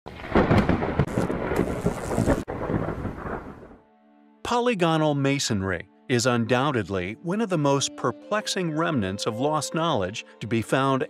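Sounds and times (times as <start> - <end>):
steady rain: 0.1 - 3.8
thunder rumbling: 0.1 - 3.8.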